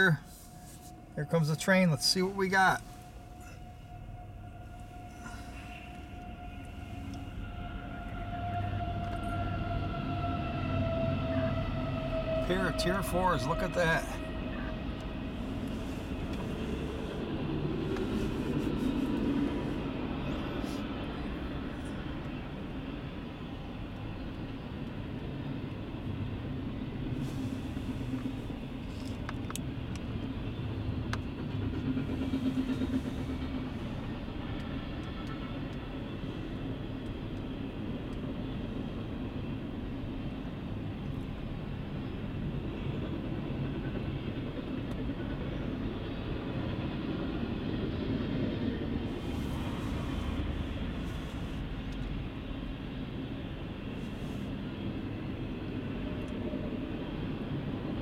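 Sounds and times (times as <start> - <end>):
train wheels rumbling on rail: 1.0 - 58.0.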